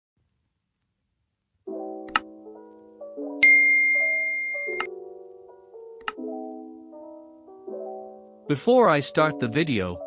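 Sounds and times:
soft keyboard music: 1.6s - 10.0s
bright bell ding: 3.4s - 4.9s
button click sound effect: 3.4s - 4.9s.

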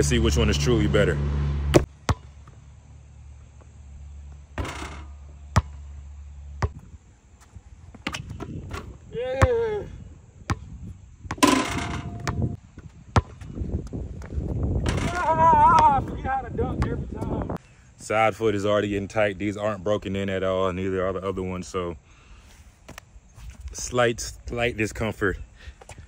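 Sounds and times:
basketball bouncing on hard court: 1.7s - 2.6s, 4.6s - 5.9s, 6.6s - 6.9s, 10.5s - 17.4s
person shouting or grunting: 9.1s - 10.0s, 15.0s - 16.2s.

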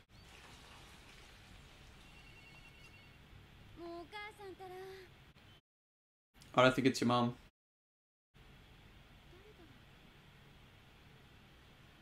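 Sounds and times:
faint high beeping: 2.0s - 3.3s
woman speaking: 3.8s - 5.1s, 9.3s - 9.8s.

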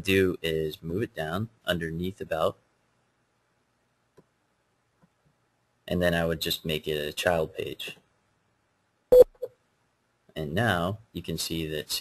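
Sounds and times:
click: 4.1s - 4.4s
electronic beep: 9.1s - 9.5s.

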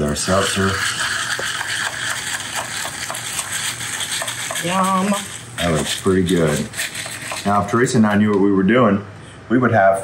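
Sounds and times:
ice clicking as stirred: 0.0s - 7.9s.

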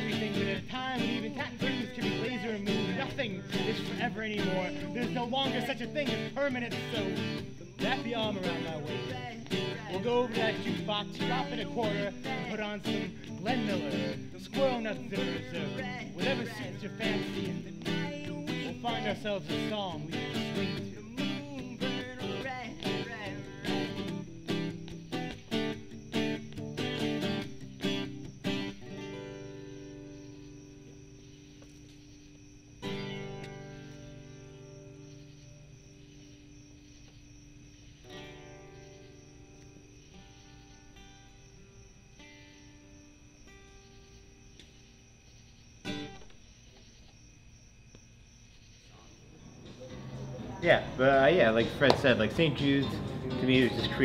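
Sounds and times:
acoustic guitar strumming: 0.0s - 45.2s, 45.8s - 46.4s, 49.8s - 54.0s.

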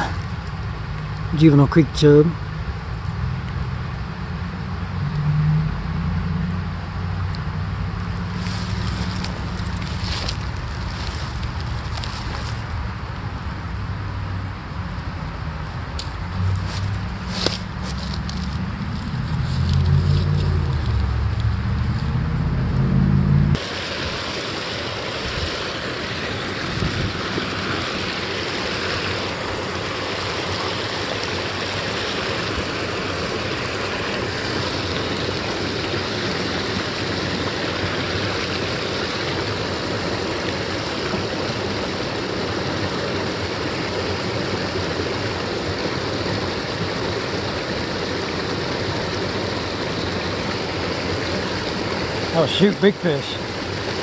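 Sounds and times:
waterfall pouring over rock: 8.2s - 13.0s, 23.6s - 54.0s
low rumble: 18.0s - 23.6s.

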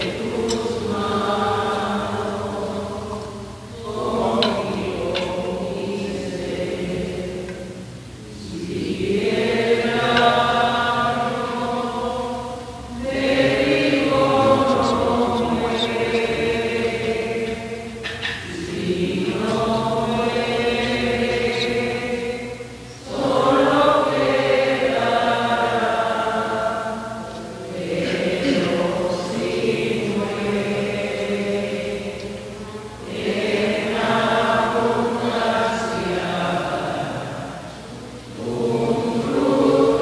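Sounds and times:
hymn sung like a chant: 0.0s - 40.0s.

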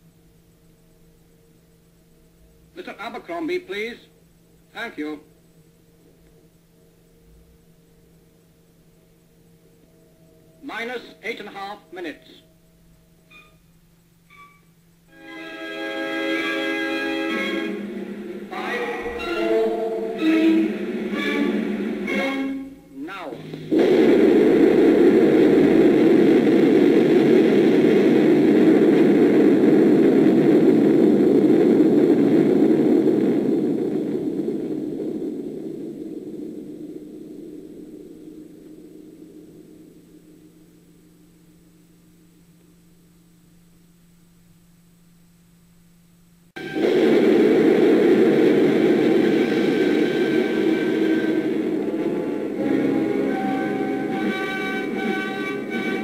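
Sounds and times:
film soundtrack music: 14.3s - 23.8s, 48.8s - 56.0s
explosion roar: 16.4s - 22.6s, 23.4s - 39.8s, 46.6s - 56.0s.

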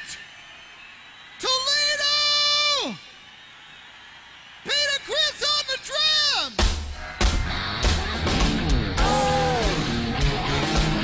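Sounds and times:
rock singer wailing: 7.0s - 11.0s.

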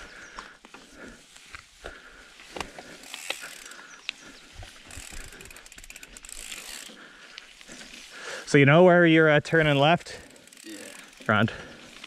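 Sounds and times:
tyres hissing on trail: 0.0s - 12.0s
bicycle freewheel hub ticking: 1.9s - 8.4s, 9.0s - 12.0s.

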